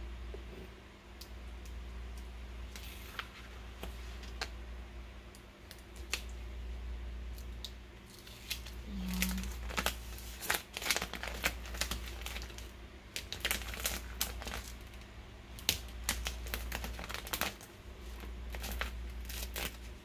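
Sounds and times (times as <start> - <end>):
vinyl peeling and crinkling: 2.2 - 4.6, 5.6 - 6.4, 7.3 - 20.0.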